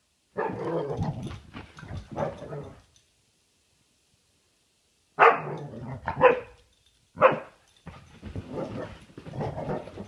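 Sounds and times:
dog barking: 0:00.4 - 0:00.8, 0:05.2 - 0:06.6, 0:07.2 - 0:07.6
dog growling: 0:08.4 - 0:10.0.

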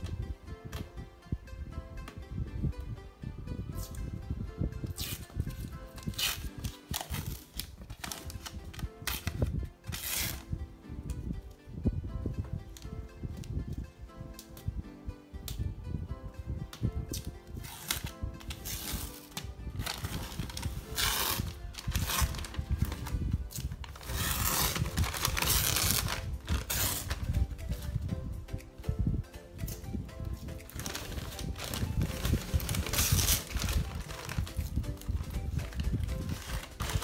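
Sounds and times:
background music: 0:00.0 - 0:37.0
protective film peeling off: 0:06.0 - 0:10.4, 0:17.1 - 0:27.3, 0:30.8 - 0:34.8.

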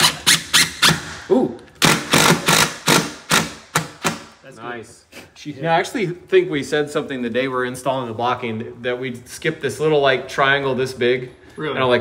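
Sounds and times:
impact driver hammering screw: 0:00.0 - 0:01.2, 0:01.8 - 0:04.3.

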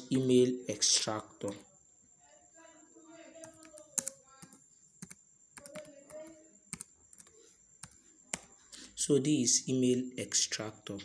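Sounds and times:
laptop keyboard keystrokes clicking: 0:03.4 - 0:08.5.

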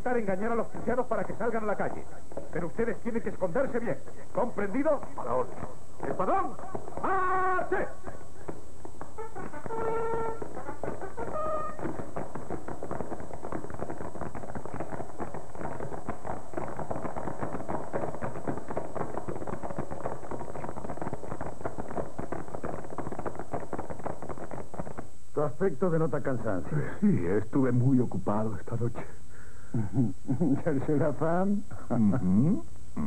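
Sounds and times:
rapid clatter of beats: 0:00.0 - 0:26.4
held brass notes: 0:09.2 - 0:11.9.

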